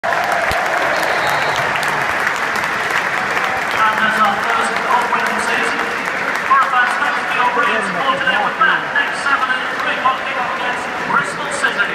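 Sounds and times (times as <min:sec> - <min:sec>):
stadium crowd clapping: 0:00.0 - 0:11.9.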